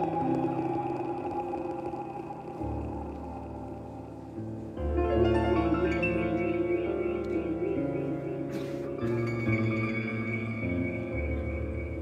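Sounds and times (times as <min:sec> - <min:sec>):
low drone: 0:00.0 - 0:12.0
jazz band sustained chord: 0:02.6 - 0:12.0.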